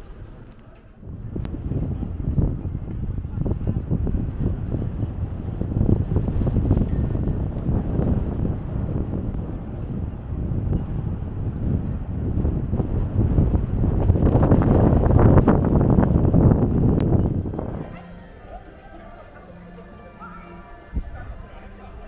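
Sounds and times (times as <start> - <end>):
wind on microphone: 0.0 - 22.0.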